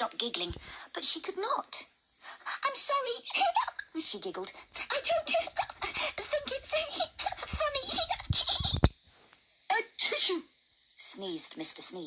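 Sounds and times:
person speaking with giggles: 0:03.3 - 0:04.0, 0:04.7 - 0:08.9.

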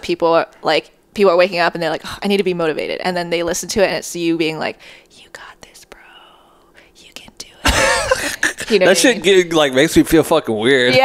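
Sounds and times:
woman whispering: 0:05.1 - 0:07.7.

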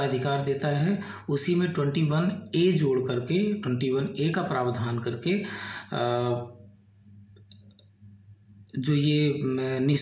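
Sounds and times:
man speaking: 0:00.0 - 0:06.6, 0:08.8 - 0:10.0
faint low hum: 0:00.0 - 0:10.0.

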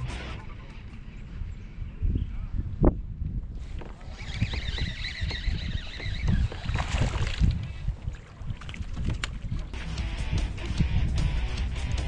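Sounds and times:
wind buffeting microphone: 0:00.7 - 0:12.0
fishing reel whirring: 0:03.6 - 0:07.3.

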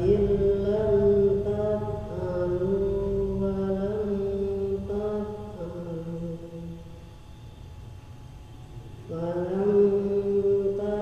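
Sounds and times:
man chanting recitation: 0:00.0 - 0:06.8, 0:09.1 - 0:11.0.

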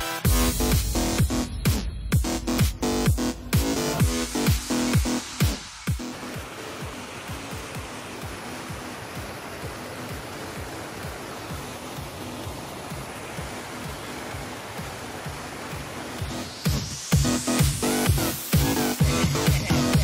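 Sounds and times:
faint dance music kick drum: 0:00.0 - 0:20.0
waterfall rushing over rocks: 0:02.2 - 0:20.0.

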